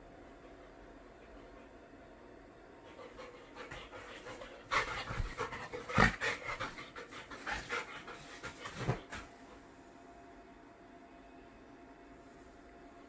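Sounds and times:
dog panting: 2.8 - 9.4.

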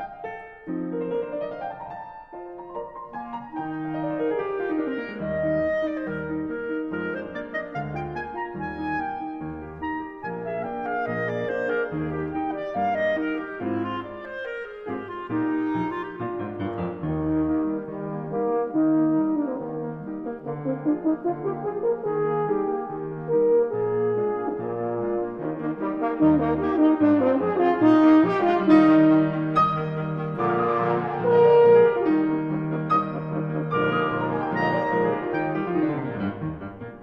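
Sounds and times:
piano runs and chords: 0.0 - 37.0
horn and clarinet long notes: 3.6 - 16.5, 17.1 - 36.2.

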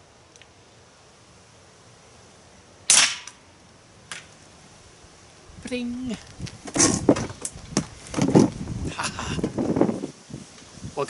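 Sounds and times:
air pistol shot: 2.9 - 3.4.

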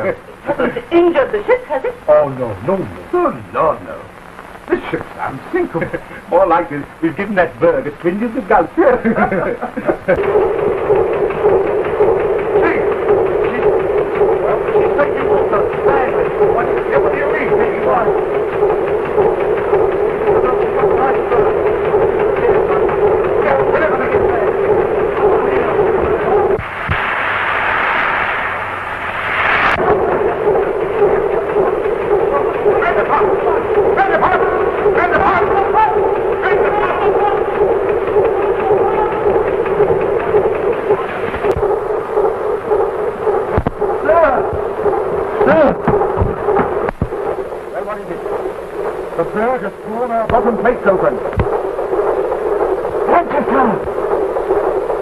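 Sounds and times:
engine-room machinery running: 0.0 - 55.0
higher rushing noise: 9.0 - 55.0.

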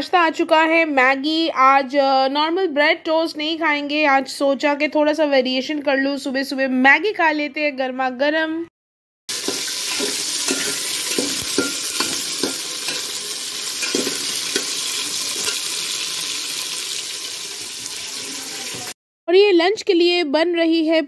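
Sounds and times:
metal spatula scraping pot: 9.3 - 16.0
vegetables sizzling in hot oil: 9.3 - 19.0.

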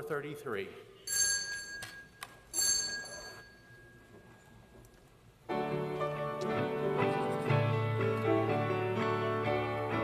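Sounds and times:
small high-pitched bell ringing: 1.0 - 4.4.

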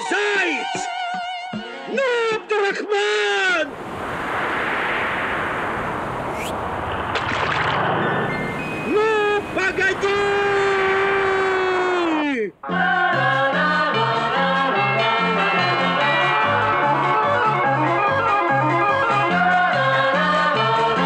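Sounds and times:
rushing sea waves: 3.5 - 12.4
rising whistle: 4.2 - 7.1
long held wail: 8.9 - 12.4
person yelling while falling: 10.0 - 12.4.

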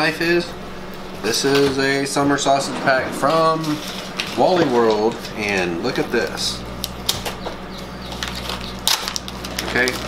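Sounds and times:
plastic film crinkling: 8.1 - 10.0
knife cutting plastic wrap: 8.2 - 10.0.

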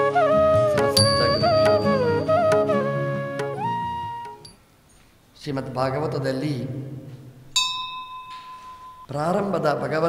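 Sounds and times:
bright bell ring: 1.0 - 2.3, 7.6 - 9.1.

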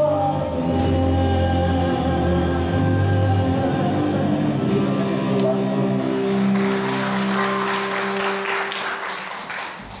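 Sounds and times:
applause: 5.9 - 10.0.

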